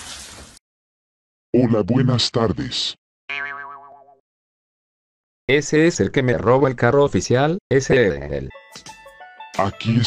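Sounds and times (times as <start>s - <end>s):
cartoon boing spring effect: 3.3s - 4.2s.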